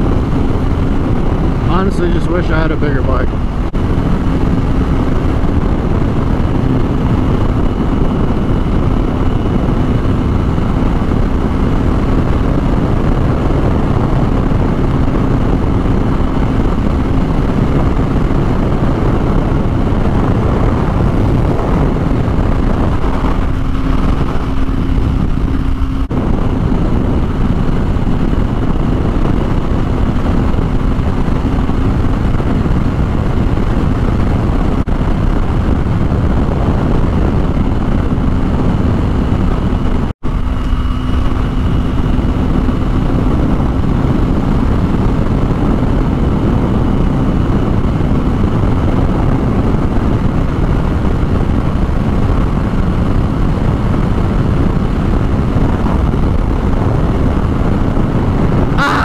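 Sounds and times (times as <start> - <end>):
motorcycle engine cruising: 0.0 - 59.0
wind rushing over microphone: 0.0 - 59.0.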